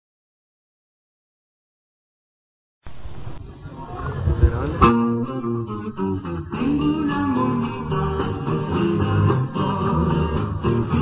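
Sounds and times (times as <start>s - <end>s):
low rumbling thumps: 4.0s - 5.7s
band playing with guitar: 4.2s - 11.0s.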